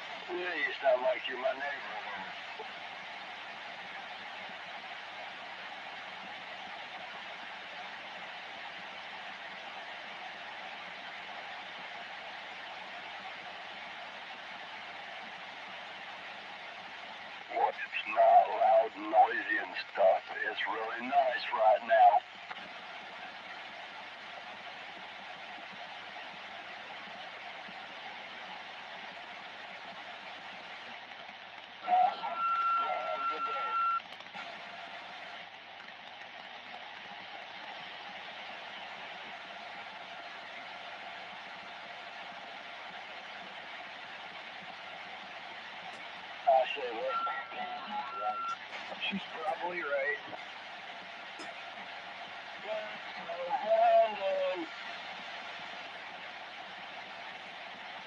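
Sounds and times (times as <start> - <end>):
radio static hiss: 0.0 - 58.0
garbled radio voice: 0.2 - 2.6, 17.5 - 22.2, 31.9 - 34.0, 46.5 - 50.4, 52.6 - 54.7
steady beep-like tone: 47.0 - 48.6.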